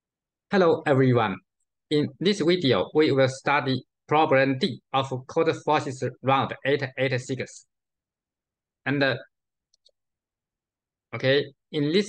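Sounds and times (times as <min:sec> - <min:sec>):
computer mouse clicks: 0:09.6 - 0:10.0.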